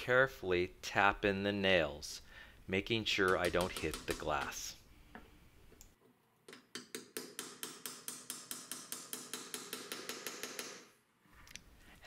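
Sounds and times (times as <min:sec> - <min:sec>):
hammer tapping nails: 0:03.2 - 0:04.6, 0:06.5 - 0:10.9.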